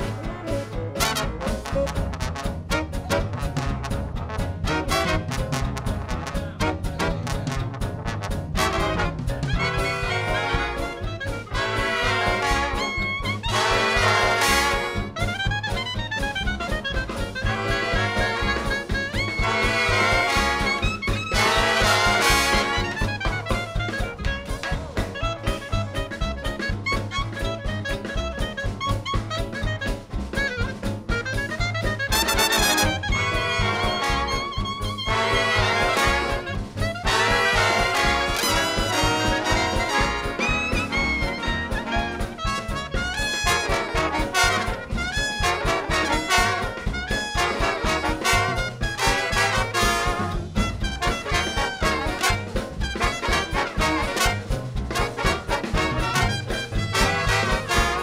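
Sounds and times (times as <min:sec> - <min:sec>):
big band swing music: 0:00.0 - 0:58.0
clarinet solo: 0:08.6 - 0:58.0.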